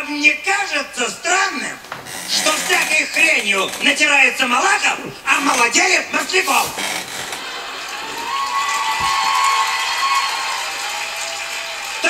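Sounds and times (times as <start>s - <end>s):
audience applauding and laughing: 7.0s - 12.0s.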